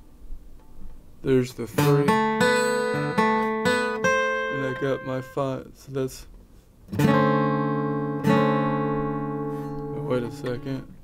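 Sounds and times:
acoustic guitar chord ringing: 1.6s - 5.6s, 6.9s - 11.0s.

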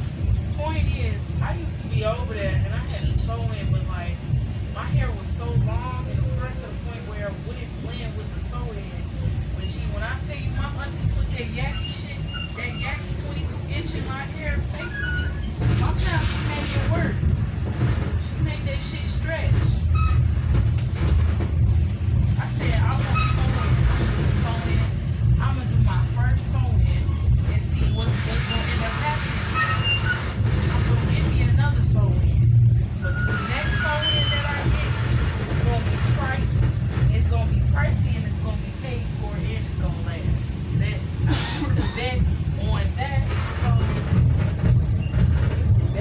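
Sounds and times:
passengers talking: 0.0s - 46.0s
train rumble inside coach: 0.0s - 46.0s.

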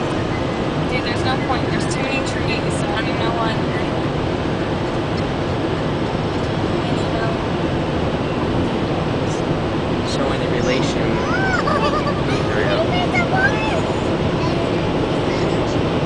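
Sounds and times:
road tyre and engine noise: 0.0s - 16.0s.

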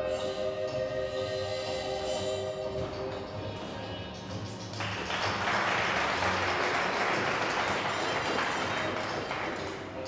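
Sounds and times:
music over sound system: 0.0s - 6.6s
audience applause: 4.8s - 9.9s.

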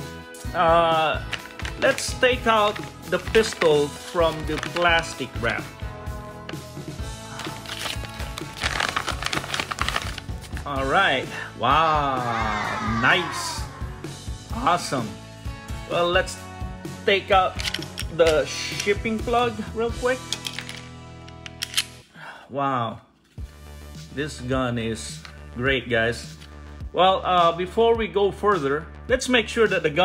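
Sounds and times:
background music: 0.0s - 30.0s
plastic bag crinkling: 1.2s - 5.5s, 7.3s - 10.7s.

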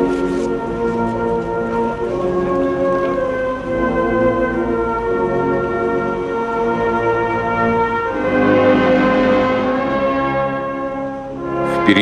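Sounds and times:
brass band playing slow chords: 0.0s - 12.0s.

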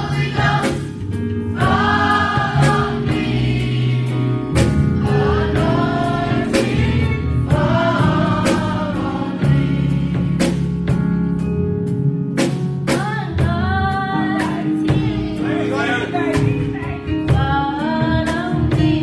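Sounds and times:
women's choir singing: 0.0s - 1.0s, 1.6s - 4.3s, 5.0s - 10.4s
bass notes: 0.0s - 19.0s.

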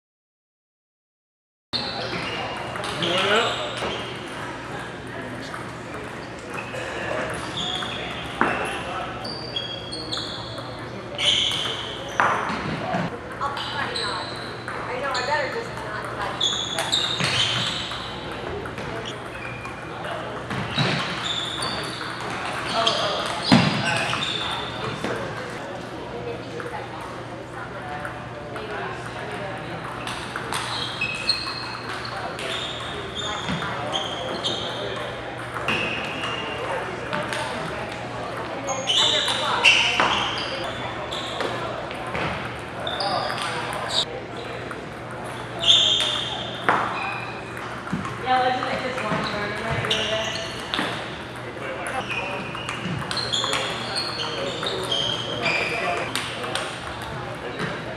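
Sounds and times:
shoe squeaks on wooden floor: 1.8s - 4.2s, 6.5s - 19.8s, 20.5s - 25.6s, 30.5s - 35.1s, 38.6s - 44.1s, 45.3s - 47.6s, 48.8s - 56.8s
voices chattering: 1.8s - 57.9s.

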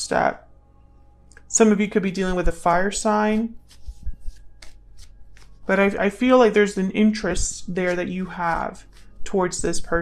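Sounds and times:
cards shuffling: 3.5s - 6.0s, 7.9s - 9.2s.

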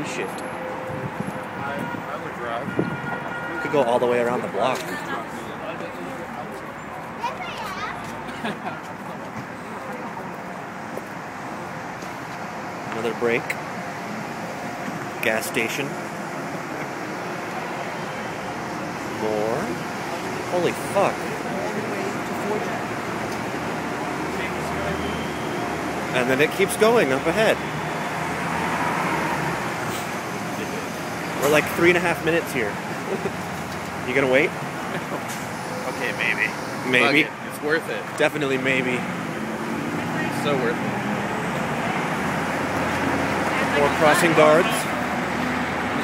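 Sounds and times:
murmur of crowd: 0.0s - 46.0s
traffic noise: 0.0s - 46.0s
people's voices: 1.2s - 16.0s, 16.6s - 28.5s, 29.4s - 46.0s
man's voice: 36.9s - 37.4s.

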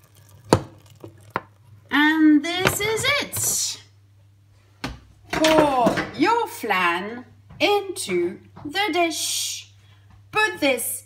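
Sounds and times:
milk pouring: 0.0s - 1.9s.

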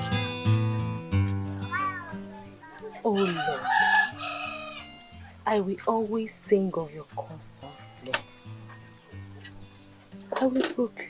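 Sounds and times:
soft background music: 0.0s - 11.0s
rooster crowing: 3.0s - 5.1s.

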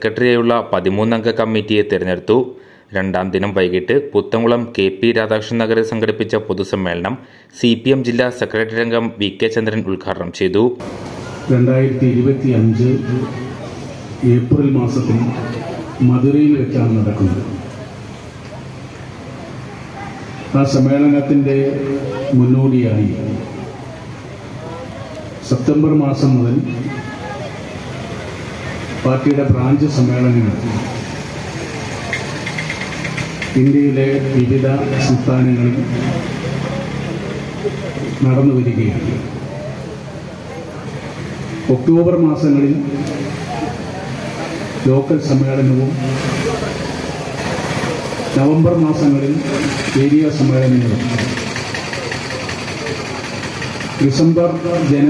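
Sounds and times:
man speaking over public address: 0.0s - 17.8s, 20.5s - 23.7s, 25.4s - 27.2s, 29.0s - 31.1s, 33.5s - 39.5s, 41.6s - 43.8s, 44.6s - 46.8s, 48.3s - 51.5s, 54.0s - 55.0s
steady background noise: 0.0s - 55.0s
engine idling: 46.0s - 55.0s.

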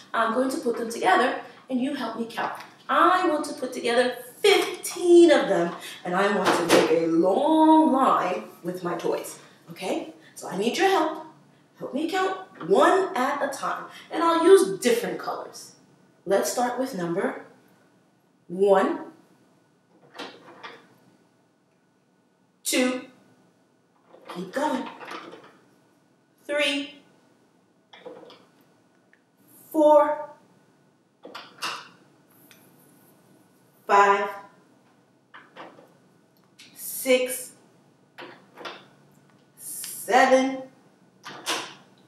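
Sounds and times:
person speaking: 0.0s - 15.7s, 24.3s - 25.1s, 26.4s - 27.0s, 33.9s - 34.5s, 39.6s - 40.7s.

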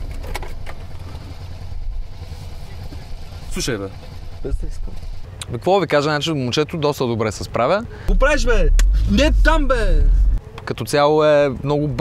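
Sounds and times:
car engine and road rumble: 0.0s - 5.4s, 7.6s - 10.6s.

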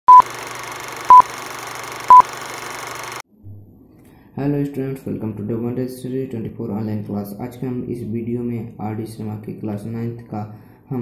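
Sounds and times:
short loud beeps: 0.1s - 0.3s, 1.1s - 1.3s, 2.1s - 2.3s.

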